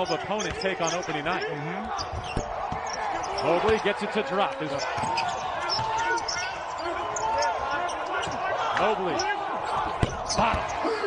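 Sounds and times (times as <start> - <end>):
sneakers squeaking: 0.0 - 11.0.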